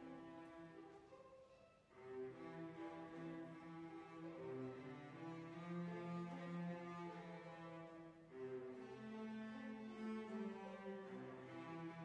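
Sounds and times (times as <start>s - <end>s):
string orchestra bowed chords: 0.0s - 12.0s.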